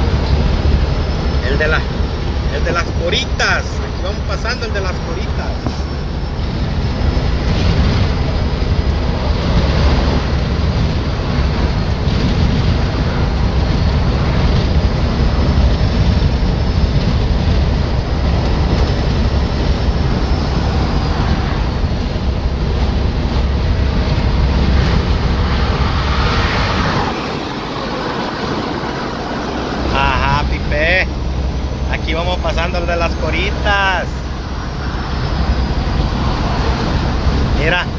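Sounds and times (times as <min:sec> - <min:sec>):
vehicle road noise at highway speed: 0:00.0 - 0:37.9
wind buffeting microphone: 0:00.0 - 0:37.9.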